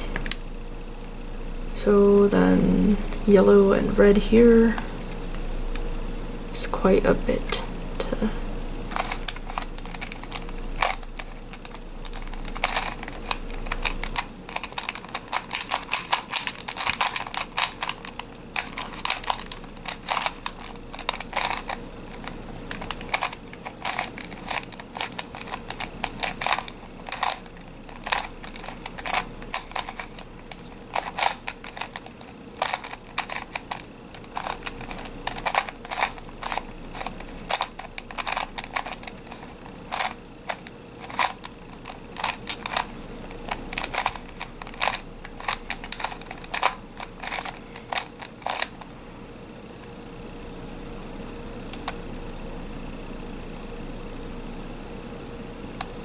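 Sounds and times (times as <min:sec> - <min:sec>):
plastic puzzle faces clicking: 0:08.9 - 0:48.9.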